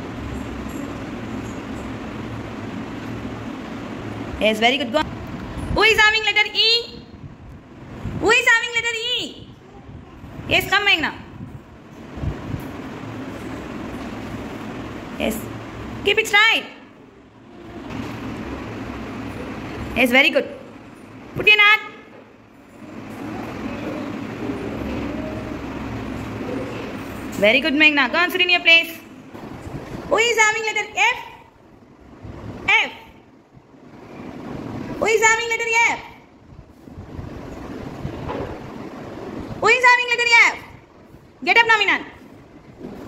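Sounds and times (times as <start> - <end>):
steady rumbling: 0.0 - 43.0.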